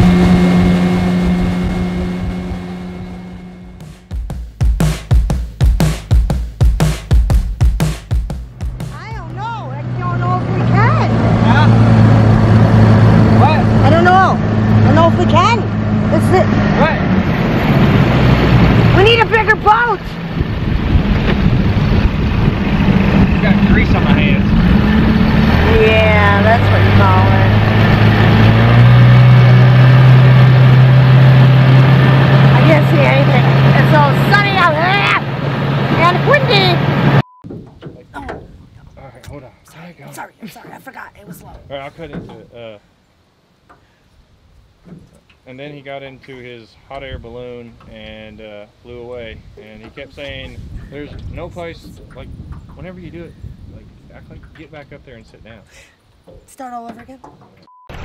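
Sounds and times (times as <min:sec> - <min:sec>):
boat outboard motor droning: 0:00.0 - 0:04.9, 0:08.4 - 0:42.4.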